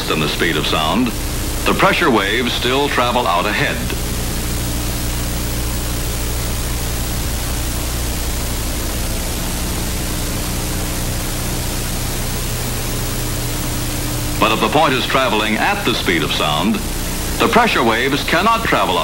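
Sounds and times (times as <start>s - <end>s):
film soundtrack hiss: 0.0s - 19.0s
low electrical hum: 0.0s - 19.0s.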